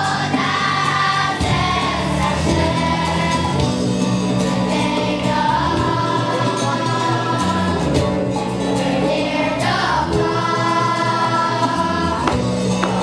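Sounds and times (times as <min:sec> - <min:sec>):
boys' choir singing: 0:00.0 - 0:03.7, 0:04.4 - 0:08.1, 0:08.7 - 0:13.0
instrumental backing track: 0:00.0 - 0:13.0.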